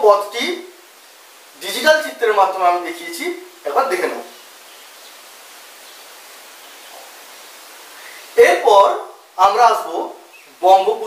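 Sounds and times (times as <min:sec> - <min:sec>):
faint background hiss: 0:00.0 - 0:11.0
man speaking: 0:01.6 - 0:04.4, 0:08.4 - 0:11.0.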